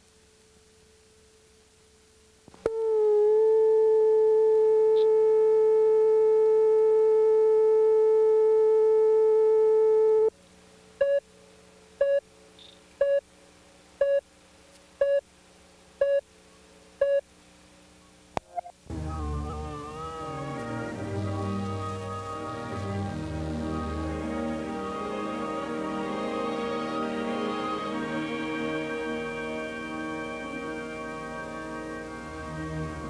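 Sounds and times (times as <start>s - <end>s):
steady reference tone: 18.4s - 33.0s.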